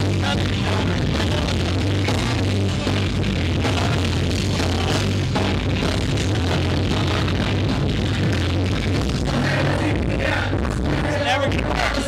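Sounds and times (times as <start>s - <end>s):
loud live concert music: 0.0s - 12.0s
steady bass line: 0.0s - 12.0s.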